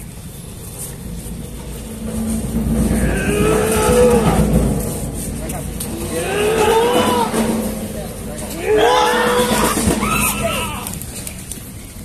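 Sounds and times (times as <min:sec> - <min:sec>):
low rumble: 0:00.0 - 0:12.0
drawn-out vocal cries: 0:02.8 - 0:05.0, 0:05.9 - 0:07.7, 0:08.5 - 0:11.0.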